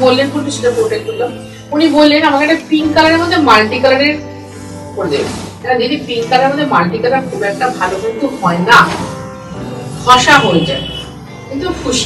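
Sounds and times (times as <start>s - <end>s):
woman speaking: 0.0s - 4.2s, 5.0s - 9.1s, 10.0s - 12.0s.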